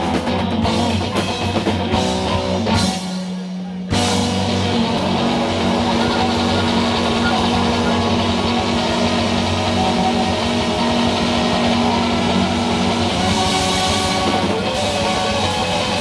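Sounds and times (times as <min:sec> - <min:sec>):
bass guitar: 0:00.0 - 0:16.0
drum kit: 0:00.0 - 0:16.0
electric guitar: 0:00.0 - 0:16.0
held sustained tones: 0:04.4 - 0:16.0.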